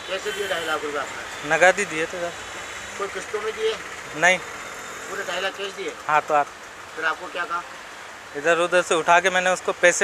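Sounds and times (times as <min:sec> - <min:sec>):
man speaking: 0:00.0 - 0:02.4, 0:03.0 - 0:04.5, 0:05.1 - 0:07.7.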